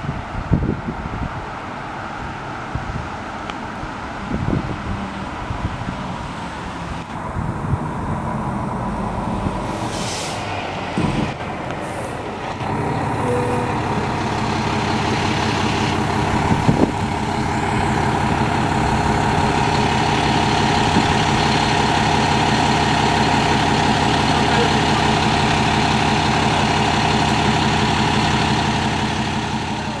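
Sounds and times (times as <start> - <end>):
diesel engine running: 0.5 - 30.0
air brake hisses: 9.7 - 10.6.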